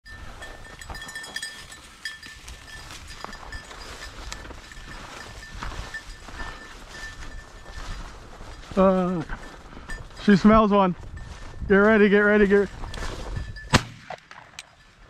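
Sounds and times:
footsteps through dry grass: 0.1s - 13.8s.

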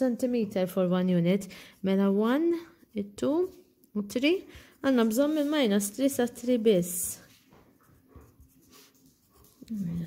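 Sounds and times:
pencil writing on paper: 4.8s - 6.4s, 7.8s - 10.0s.

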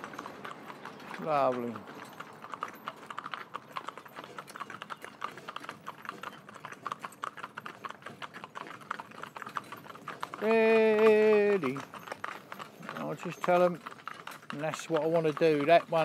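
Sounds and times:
hooves clip-clopping on tarmac: 0.0s - 16.0s.

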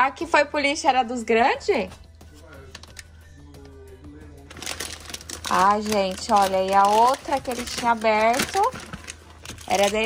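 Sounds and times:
soft background music: 0.0s - 10.0s
wrappers crinkling: 4.4s - 10.0s.

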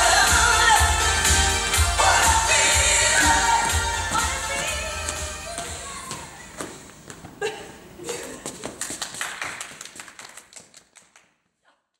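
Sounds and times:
people clapping: 8.1s - 11.4s.

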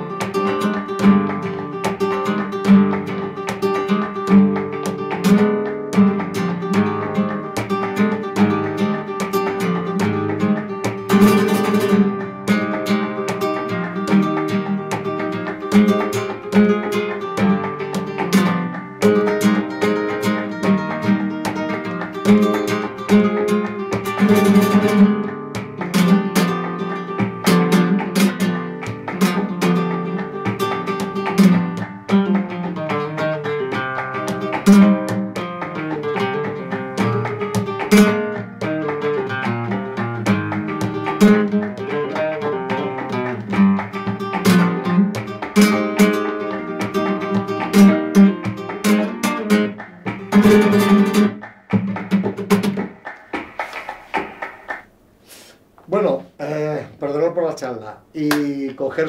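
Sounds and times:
flamenco guitar plucked notes: 0.0s - 59.0s.

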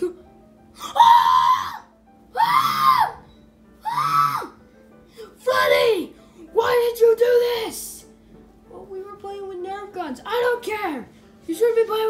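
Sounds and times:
person screaming: 0.8s - 3.2s, 3.8s - 4.6s.

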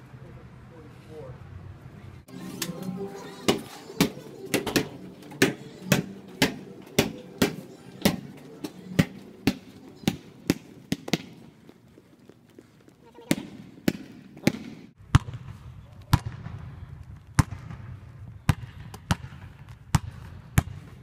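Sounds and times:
basketball bouncing on hard floor: 9.0s - 11.4s.

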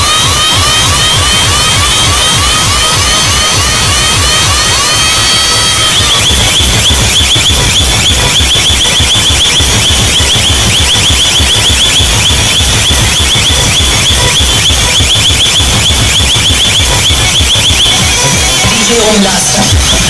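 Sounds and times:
heavy bass pulse: 0.0s - 20.0s
high siren-like chirp: 0.0s - 20.0s.

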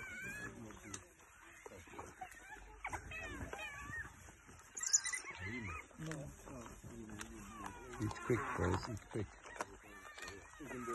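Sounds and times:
low voices murmuring: 0.0s - 10.9s
wild dogs chirping: 0.0s - 10.9s.

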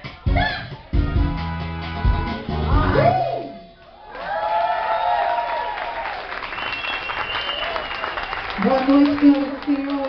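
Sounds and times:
audience applauding: 4.1s - 10.0s.

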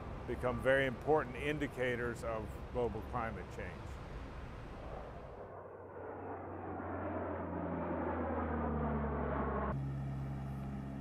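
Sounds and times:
turboprop aircraft engines droning: 0.0s - 11.0s.

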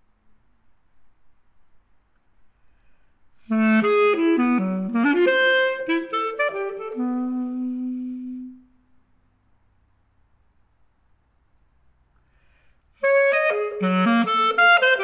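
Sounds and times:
basset horn playing: 3.4s - 8.7s, 13.0s - 15.0s.

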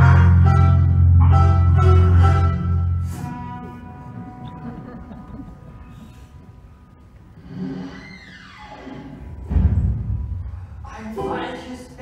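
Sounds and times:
low sustained notes: 0.0s - 7.2s.

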